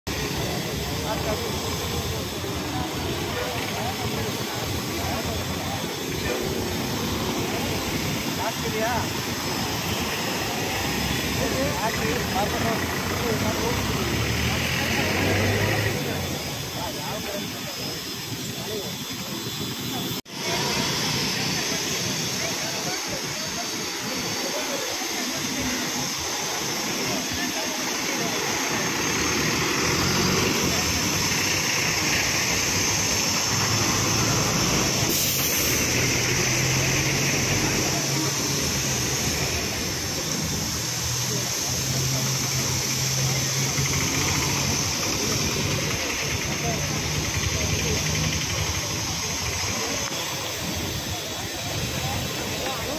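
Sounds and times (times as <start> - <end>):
people talking: 0.1 - 52.9
road traffic engines passing: 0.1 - 52.9.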